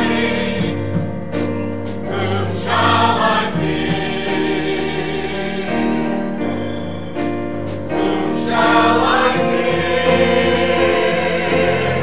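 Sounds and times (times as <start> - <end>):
mixed choir singing: 0.0 - 1.1, 2.0 - 7.2, 7.8 - 12.0.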